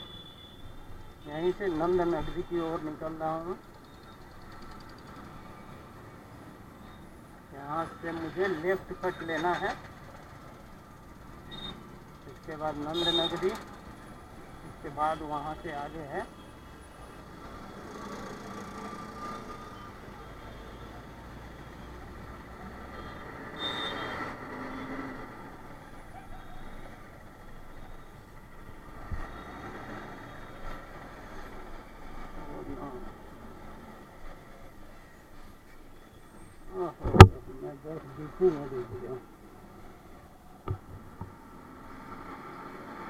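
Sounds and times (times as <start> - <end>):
motorcycle engine and road noise: 1.2 - 6.7, 16.8 - 21.0, 21.7 - 35.7, 36.3 - 43.0.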